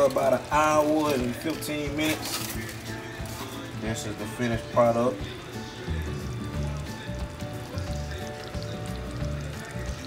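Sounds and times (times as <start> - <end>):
gravy bubbling and sizzling: 0.0 - 10.0
background music with bass beat: 2.4 - 10.0.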